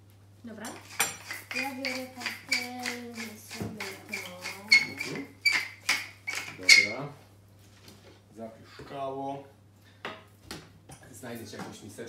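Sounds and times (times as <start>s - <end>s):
pepper mill grinding: 0.7s - 6.9s.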